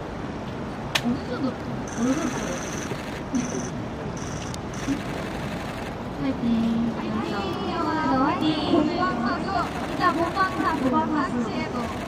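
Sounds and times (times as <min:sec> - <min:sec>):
outdoor crowd ambience: 0:00.0 - 0:12.0
high rapidly pulsing chirp: 0:01.9 - 0:05.3.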